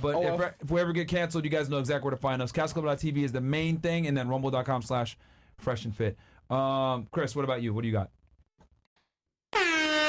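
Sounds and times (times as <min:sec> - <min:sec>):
loud air horn blast: 0:09.6 - 0:10.0.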